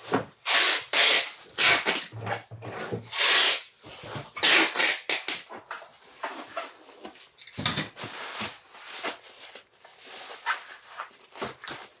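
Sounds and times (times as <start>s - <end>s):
packing tape pulled from dispenser: 0.4s - 2.1s, 3.1s - 3.7s, 4.4s - 5.5s.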